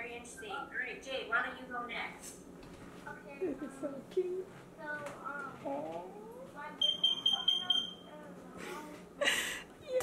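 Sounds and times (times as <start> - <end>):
electronic beeper short beeps: 6.8 - 8.1.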